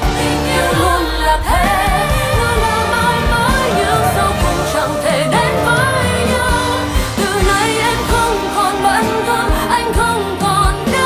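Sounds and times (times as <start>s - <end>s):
low drum beat: 0.0s - 8.5s
woman singing pop ballad: 0.0s - 11.0s.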